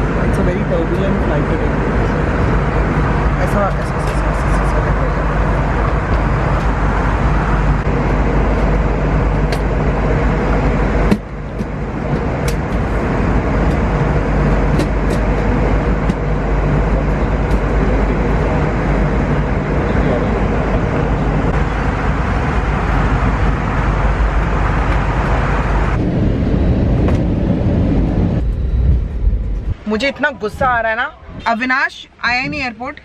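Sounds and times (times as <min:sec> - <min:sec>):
airliner cabin noise: 0:00.0 - 0:33.0.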